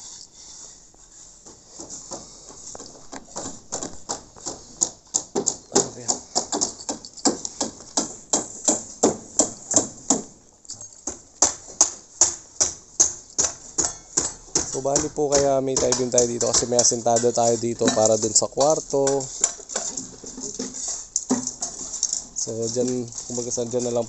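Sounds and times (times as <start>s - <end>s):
background voices: 14.8s - 19.7s.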